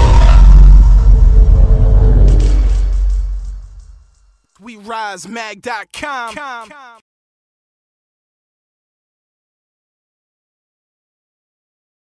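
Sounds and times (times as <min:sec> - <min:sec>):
deep bass rumble: 0:00.0 - 0:04.2.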